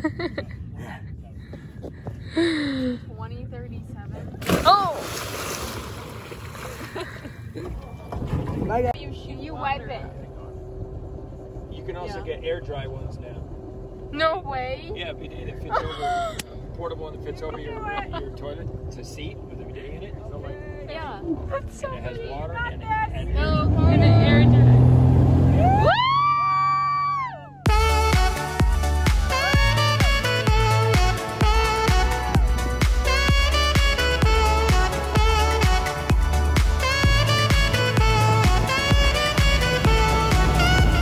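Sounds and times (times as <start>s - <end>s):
water splashing: 4.4s - 7.4s
boat engine idling: 5.9s - 25.8s, 26.5s - 41.0s
high whooping cheer: 25.5s - 30.1s.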